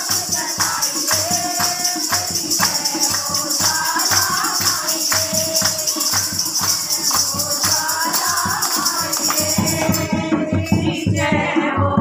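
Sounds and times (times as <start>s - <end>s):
hand clapping: 0.0s - 10.1s
jingling percussion: 0.0s - 12.0s
women singing together: 0.0s - 12.0s.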